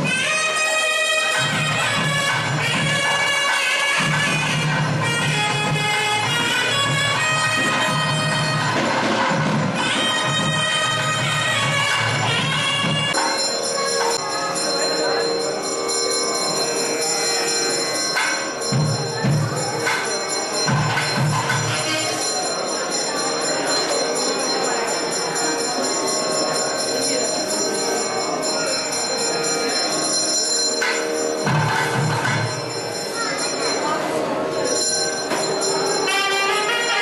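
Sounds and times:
crowd voices: 0.0s - 37.0s
temple bells ringing: 0.0s - 37.0s.

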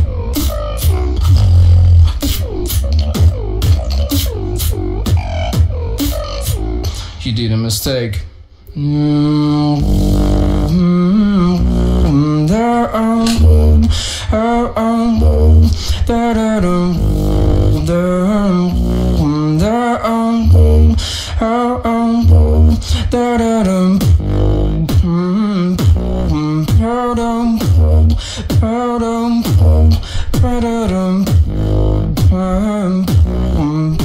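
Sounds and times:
beatboxing kick and snare: 0.0s - 7.2s, 13.2s - 14.2s, 23.8s - 34.0s
pitched vocal line gliding: 0.0s - 7.2s, 8.6s - 34.0s.

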